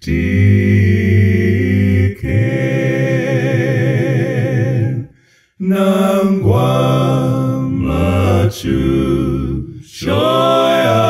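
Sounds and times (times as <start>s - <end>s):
a cappella harmony singing: 0.0s - 11.0s.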